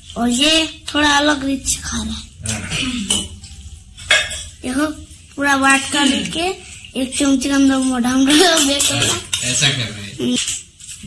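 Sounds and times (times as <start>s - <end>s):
metal dishes and utensils clinking: 2.4s - 11.0s.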